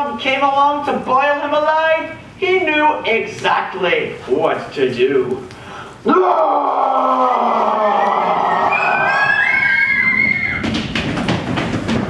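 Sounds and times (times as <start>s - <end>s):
group of people screaming: 6.1s - 10.7s.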